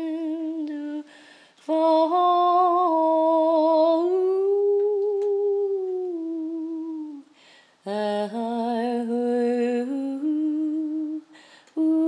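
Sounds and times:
woman singing a long note: 0:01.7 - 0:07.2, 0:07.9 - 0:12.0.

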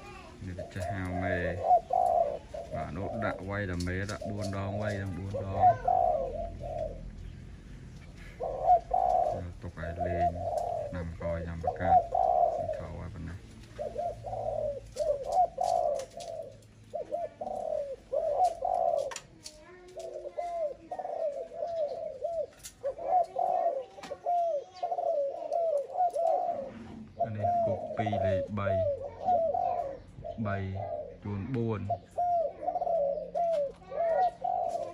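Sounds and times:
dove cooing: 0:00.0 - 0:34.9.

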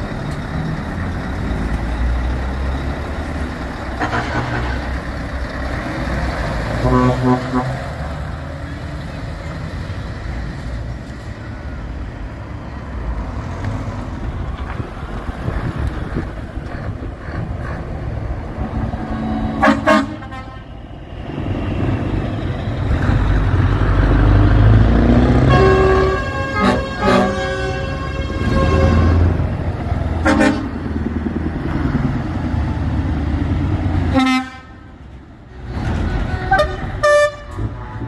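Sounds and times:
truck diesel engines rumbling: 0:00.0 - 0:38.0
truck horn: 0:03.8 - 0:05.2, 0:06.6 - 0:08.2, 0:18.5 - 0:21.0, 0:25.2 - 0:29.4, 0:30.2 - 0:30.8, 0:34.0 - 0:37.9.

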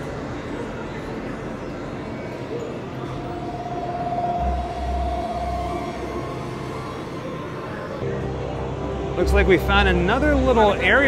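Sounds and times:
eerie synth drone: 0:00.0 - 0:11.0.

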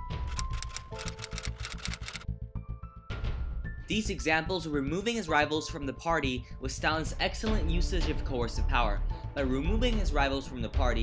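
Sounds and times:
background music: 0:00.0 - 0:11.0
typewriter keys clicking: 0:00.3 - 0:02.2.

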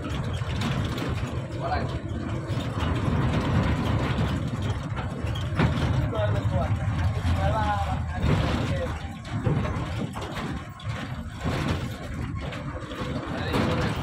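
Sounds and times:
bus engine rumble and road noise: 0:00.0 - 0:14.0.

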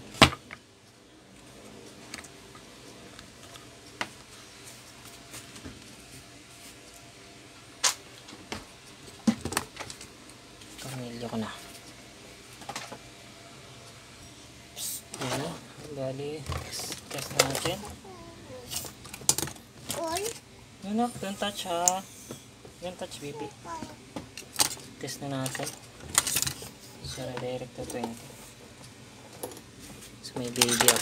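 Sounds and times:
young child vocalising: 0:17.9 - 0:18.8, 0:23.4 - 0:24.0.

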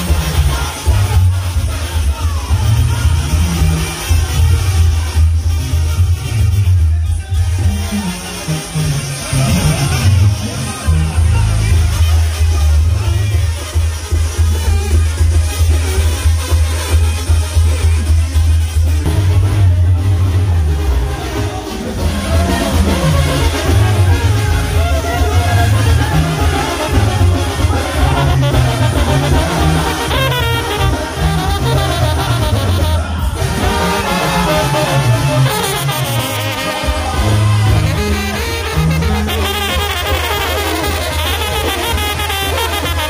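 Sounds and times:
drums: 0:00.0 - 0:43.0
loud live band music: 0:00.0 - 0:43.0
sousaphone bass line: 0:00.0 - 0:43.0
trombones and trumpets: 0:00.0 - 0:43.0.

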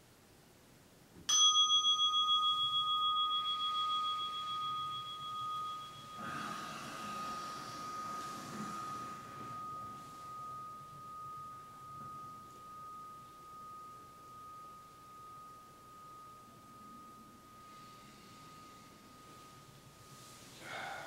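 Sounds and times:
meditation bell ringing: 0:01.3 - 0:21.0.

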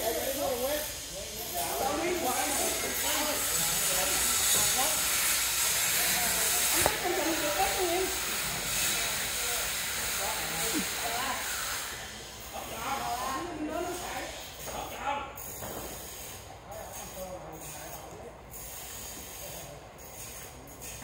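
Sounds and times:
people talking indistinctly: 0:00.0 - 0:15.6
steady hiss: 0:00.0 - 0:21.0.

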